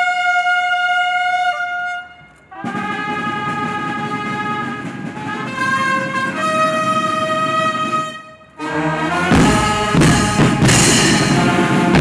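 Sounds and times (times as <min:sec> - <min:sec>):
brass instruments playing held notes: 0:00.0 - 0:12.0.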